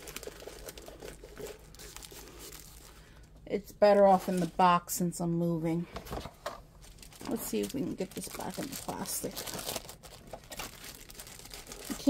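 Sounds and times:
canvas and plastic film crackling: 0.0 - 3.2, 6.8 - 12.0.

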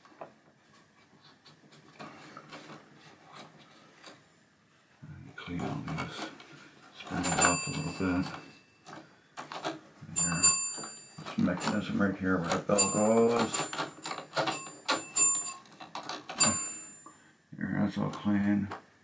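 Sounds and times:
pinball chime bell ringing: 7.2 - 8.6, 10.2 - 11.4, 12.7 - 15.7, 16.4 - 17.1.

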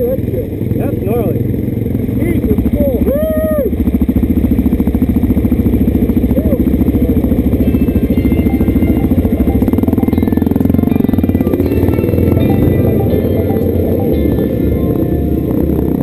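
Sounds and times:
motorcycle engine idling: 0.0 - 16.0
faint music: 7.6 - 16.0.

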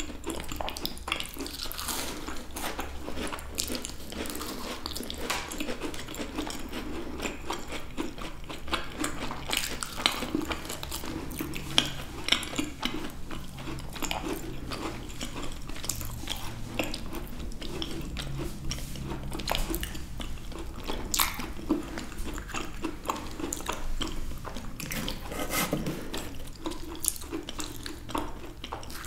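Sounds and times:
people chewing macarons: 0.0 - 29.0.

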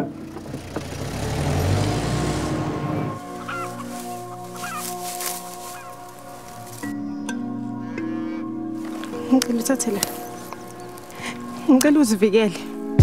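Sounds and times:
music: 0.0 - 13.0.

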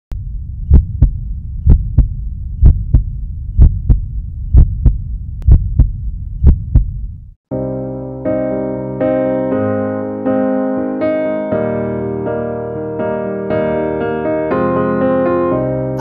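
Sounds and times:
heartbeat double thump: 0.1 - 7.4
low hum: 0.1 - 7.4
piano chords: 7.5 - 16.0.

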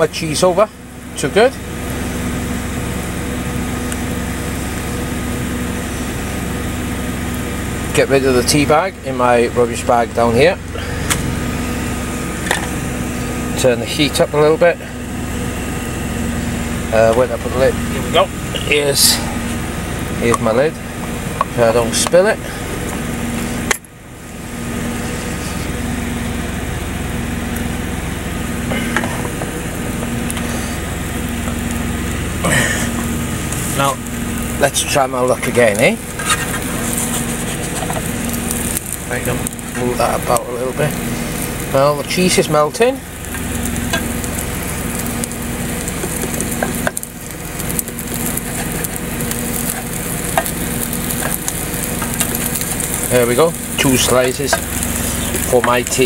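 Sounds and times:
steady low hum: 0.0 - 56.0
truck engine idling: 0.0 - 56.0
omelette sizzling in frying pan: 0.9 - 9.0, 9.7 - 56.0.

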